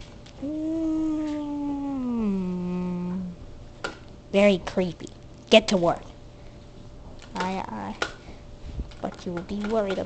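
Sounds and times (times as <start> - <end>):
person humming: 0.4 - 3.4.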